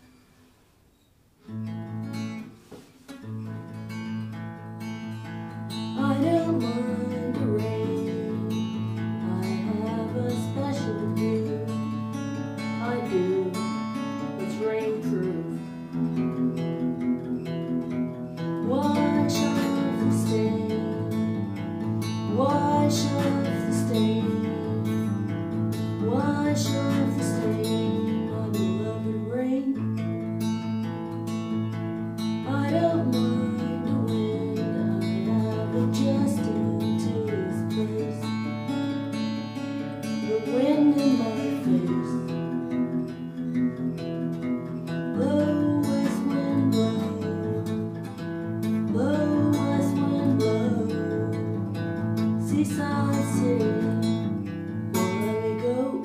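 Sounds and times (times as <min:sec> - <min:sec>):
acoustic guitar chords: 0:00.0 - 0:56.0
person singing: 0:05.8 - 0:12.0, 0:12.6 - 0:15.9, 0:18.6 - 0:21.5, 0:22.1 - 0:25.1, 0:25.9 - 0:29.8, 0:32.4 - 0:38.7, 0:40.2 - 0:42.4, 0:45.1 - 0:54.3, 0:54.9 - 0:56.0.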